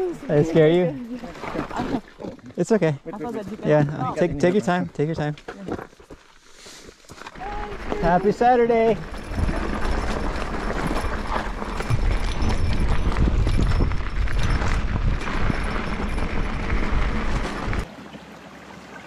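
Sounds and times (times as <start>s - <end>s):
tyres crunching on dirt: 4.4s - 17.9s
bike rattling over bumps: 7.1s - 17.9s
wind buffeting microphone: 7.4s - 17.9s
creek trickling: 17.8s - 19.0s.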